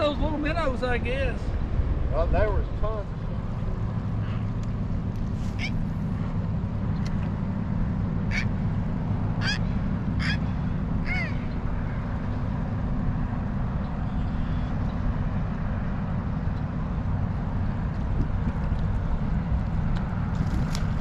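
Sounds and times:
steady low rumble: 0:00.0 - 0:21.0
bird calling: 0:05.4 - 0:06.3, 0:08.2 - 0:08.7, 0:09.3 - 0:12.6.

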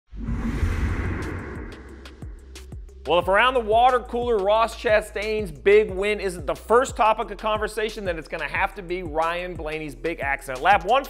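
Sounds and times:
deep rumble: 0:00.1 - 0:03.0
rushing whoosh sweep: 0:00.1 - 0:03.0.

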